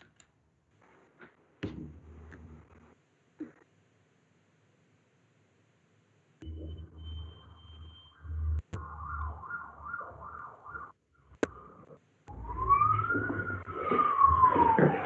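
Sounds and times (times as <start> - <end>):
high steady tone: 6.4 - 10.9
low hum: 6.4 - 15.0
siren-like wail: 6.5 - 11.0, 12.3 - 15.0.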